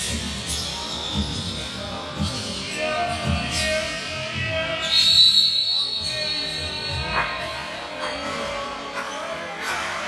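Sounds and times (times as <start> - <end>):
high steady whistle tone: 4.7 - 7.9.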